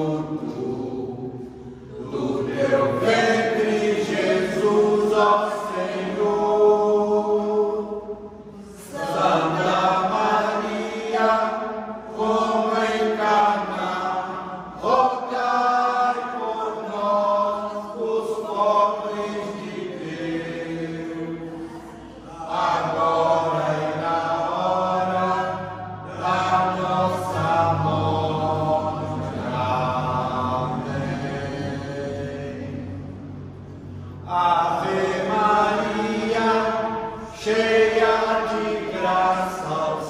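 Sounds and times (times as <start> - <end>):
group of voices praying: 0.0 - 40.0.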